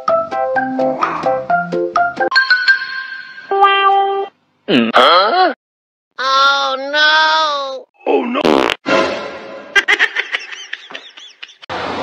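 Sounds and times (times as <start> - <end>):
voice: 3.7 - 5.5, 6.2 - 8.5.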